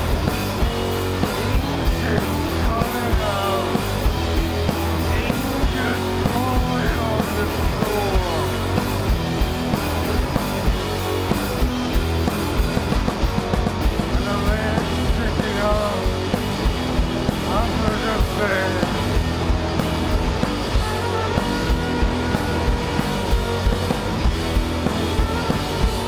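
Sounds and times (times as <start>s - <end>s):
noise rock band playing: 0.0s - 26.0s
person singing: 1.4s - 9.0s, 14.1s - 16.4s, 17.4s - 19.3s, 20.2s - 26.0s.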